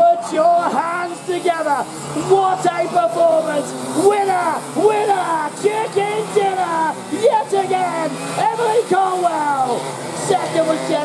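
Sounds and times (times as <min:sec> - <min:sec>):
man's excited commentary cries: 0:00.0 - 0:11.0.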